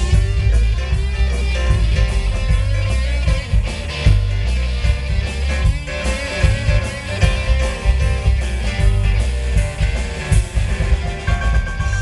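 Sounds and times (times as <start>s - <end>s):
country band playing live: 0.0s - 12.0s
drum kit: 0.0s - 12.0s
electric guitar: 0.0s - 12.0s.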